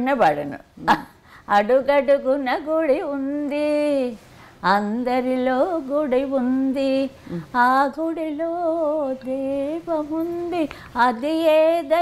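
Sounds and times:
elderly woman singing unaccompanied: 0:00.8 - 0:12.0.

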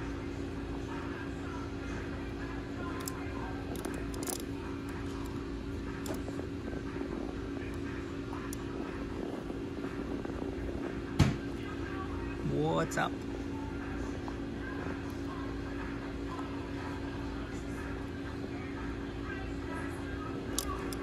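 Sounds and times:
steady background hum: 0:00.0 - 0:21.0
rabbit crunching pellets: 0:00.8 - 0:21.0.

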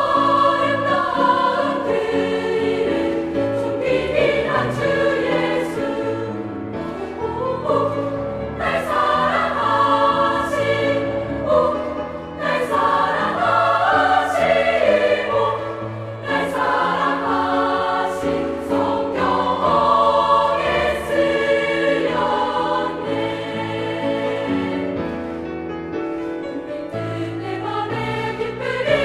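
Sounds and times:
girls' choir singing: 0:00.0 - 0:25.0, 0:27.0 - 0:29.0.

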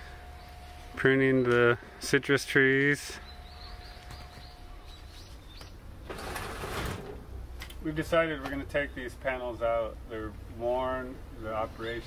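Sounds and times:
faint steady hum: 0:00.0 - 0:12.0
small bird chirping: 0:03.2 - 0:05.8.

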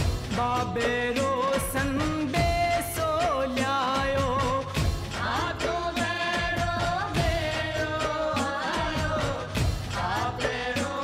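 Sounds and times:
steady drum beats: 0:00.0 - 0:11.0.

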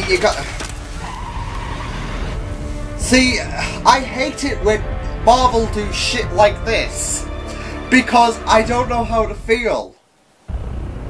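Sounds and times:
car engine running: 0:00.0 - 0:07.2
tv background music: 0:00.0 - 0:09.9.

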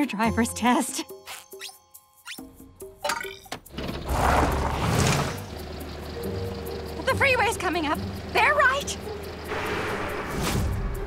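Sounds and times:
light cartoon music: 0:00.0 - 0:11.0
cartoon van engine pulling away: 0:03.6 - 0:11.0.

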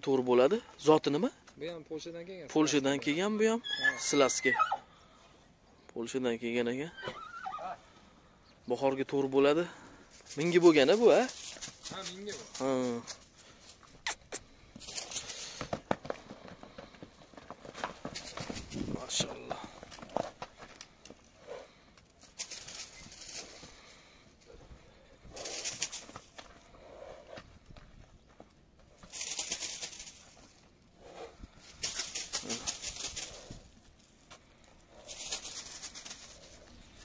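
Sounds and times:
hoofbeats on soft dirt: 0:10.0 - 0:14.0, 0:14.6 - 0:37.0.

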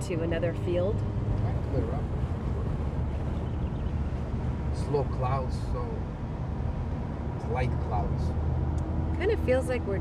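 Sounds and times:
car driving rumble from inside: 0:00.0 - 0:10.0.

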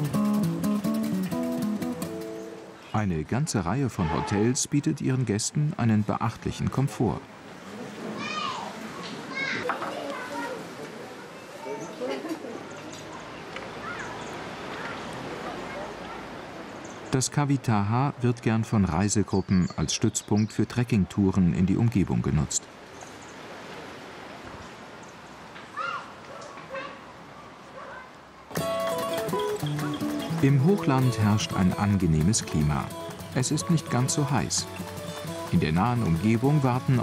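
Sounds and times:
murmur of people talking: 0:06.7 - 0:17.2
child calling out: 0:08.2 - 0:10.7, 0:25.7 - 0:27.0.

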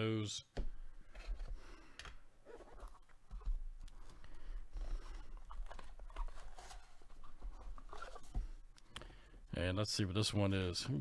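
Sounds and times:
cardboard and plastic rustling: 0:02.6 - 0:08.6.

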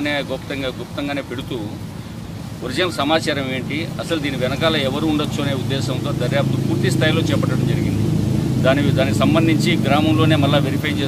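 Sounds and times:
low engine rumble: 0:00.0 - 0:11.0
man speaking into microphones: 0:00.0 - 0:11.0.

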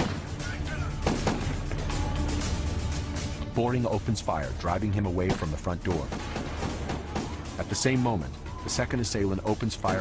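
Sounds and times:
dramatic music: 0:00.0 - 0:10.0
burst of gunshots: 0:01.0 - 0:01.6, 0:06.1 - 0:07.5.

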